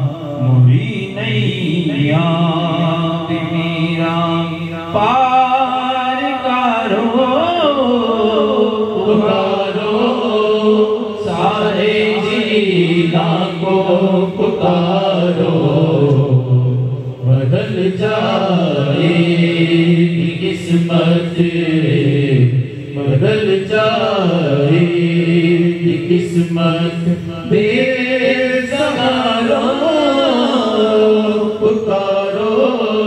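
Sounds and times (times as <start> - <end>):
men chanting in unison: 0.0 - 33.0.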